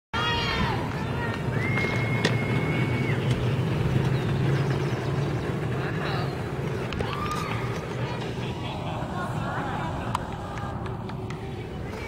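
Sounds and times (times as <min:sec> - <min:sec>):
cars coasting by: 0:00.2 - 0:12.0
spectators' voices: 0:00.2 - 0:12.0
low rumble: 0:00.4 - 0:12.0
long high shout or whistle: 0:01.5 - 0:03.2.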